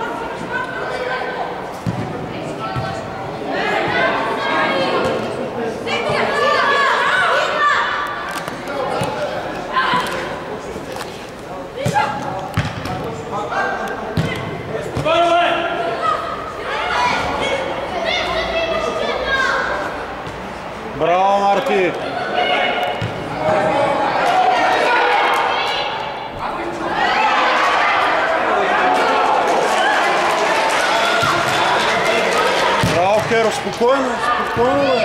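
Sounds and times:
voices calling out in echoing hall: 0.0s - 35.0s.

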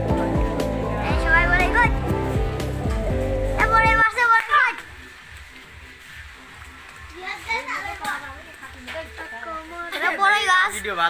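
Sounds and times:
children talking and calling out: 0.8s - 2.4s, 3.4s - 5.3s, 6.6s - 11.0s.

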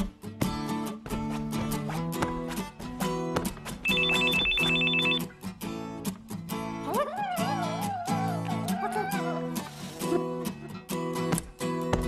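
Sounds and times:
strummed acoustic guitar music: 0.0s - 7.0s, 7.6s - 12.0s
telephone ringing: 3.8s - 5.2s.

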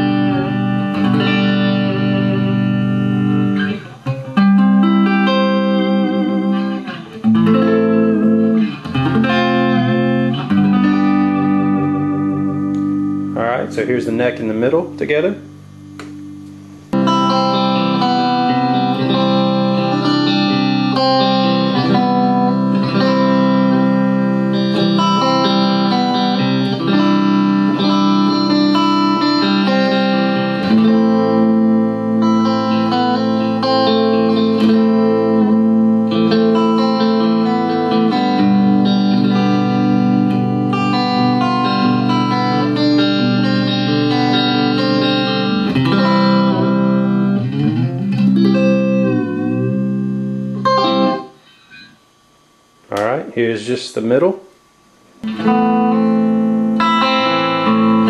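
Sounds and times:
clean electric guitar chords: 0.0s - 53.3s, 55.2s - 58.0s.

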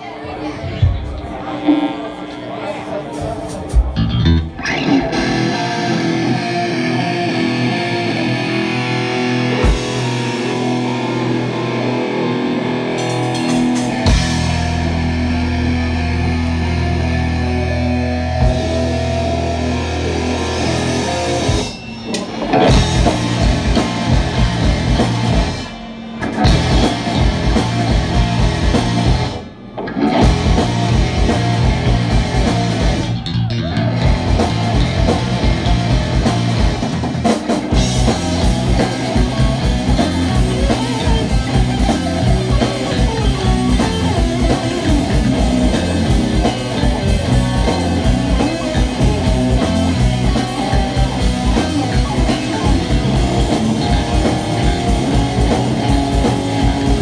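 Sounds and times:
distorted electric guitars: 0.5s - 57.0s
drum kit: 3.1s - 57.0s
fast chugging guitar riff: 3.7s - 57.0s.

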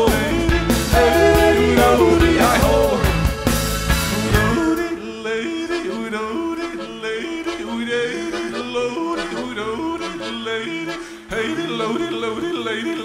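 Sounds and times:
man yodeling: 0.0s - 3.2s, 4.4s - 13.0s
loud full band: 0.0s - 4.9s
sparse held accompaniment: 0.0s - 4.9s.

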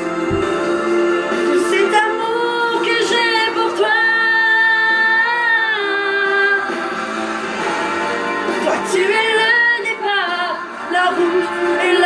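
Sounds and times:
musical accompaniment: 0.0s - 12.0s
woman singing a ballad: 1.3s - 6.9s, 8.6s - 12.0s.

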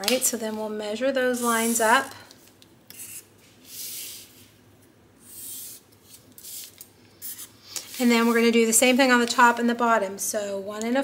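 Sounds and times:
marker drawn along ruler on paper: 5.2s - 8.4s.

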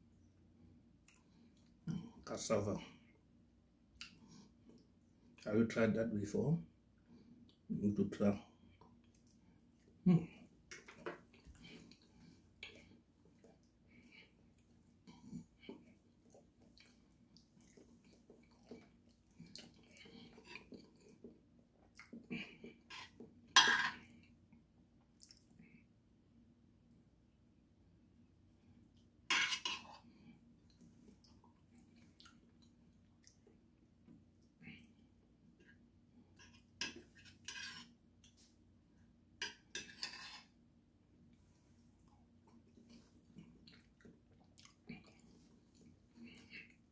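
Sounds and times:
person chewing: 10.7s - 23.2s, 42.0s - 46.9s
cutlery scraping ceramic plate: 22.9s - 24.0s, 29.3s - 30.0s, 36.5s - 37.9s, 39.4s - 40.5s.

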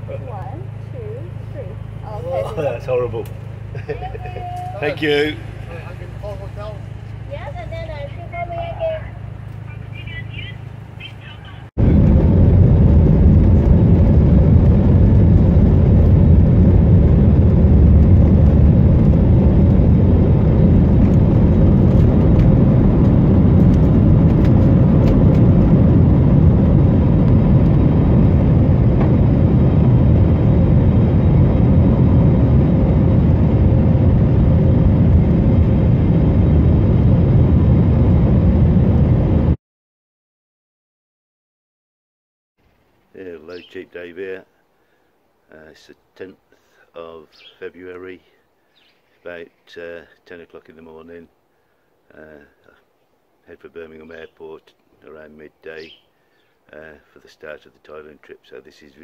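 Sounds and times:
jet engines roaring in cabin: 0.0s - 39.6s
man talking: 2.3s - 3.3s, 4.7s - 6.9s, 43.1s - 44.5s, 45.5s - 48.4s, 49.2s - 51.3s, 52.1s - 52.8s, 53.4s - 56.0s, 56.7s - 59.0s.

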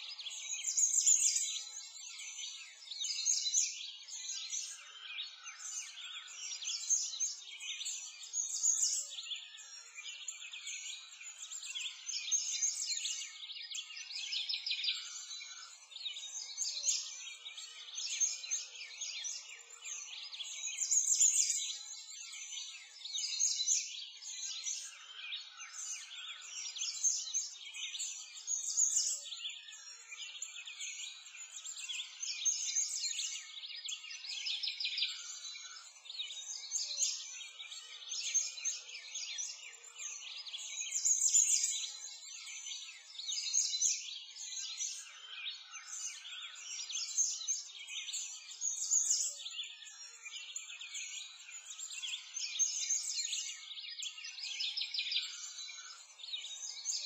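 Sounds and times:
small birds chirping and singing: 0.0s - 57.0s.

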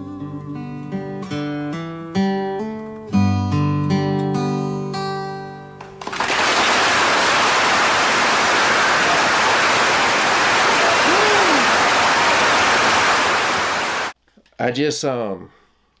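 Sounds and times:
audience applauding: 6.0s - 14.2s.

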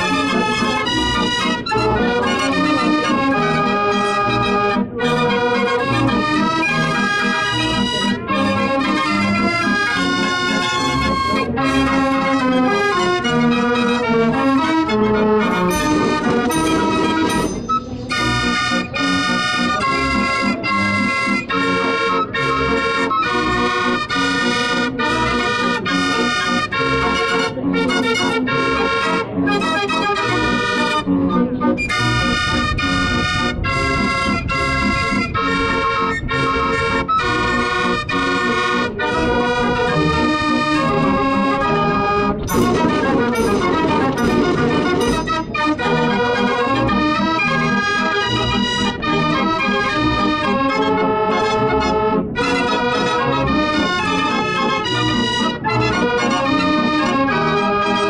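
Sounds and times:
street organ playing a tune: 0.0s - 58.0s.

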